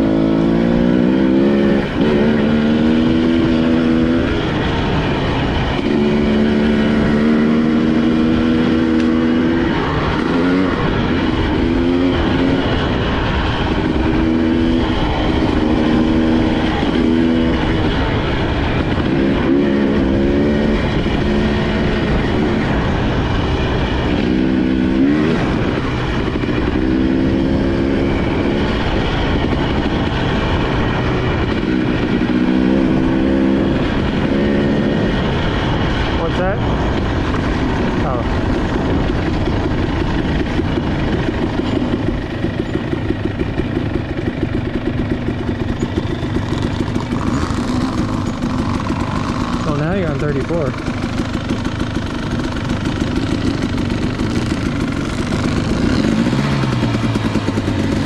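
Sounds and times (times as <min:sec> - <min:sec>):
dirt bike engine: 0:00.0 - 0:58.0.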